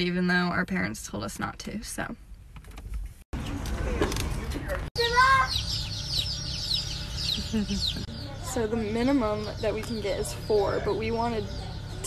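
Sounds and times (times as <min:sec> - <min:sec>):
ducklings peeping: 0:03.4 - 0:12.0.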